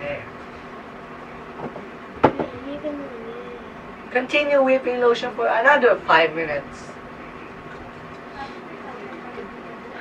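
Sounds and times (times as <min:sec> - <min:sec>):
person humming low: 0:02.5 - 0:03.8.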